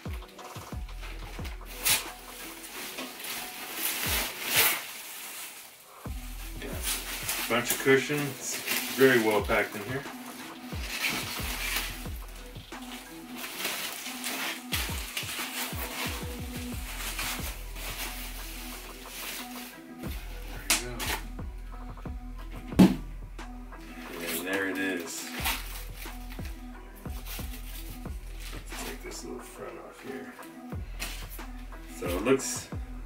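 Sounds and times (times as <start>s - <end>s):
foam packing sheets crinkling: 0.0s - 21.3s, 23.8s - 32.6s
background music: 0.0s - 33.0s.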